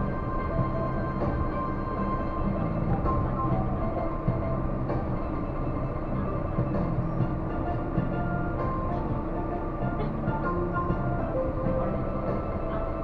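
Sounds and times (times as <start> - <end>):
background music: 0.0 - 13.0
monorail running: 0.0 - 13.0.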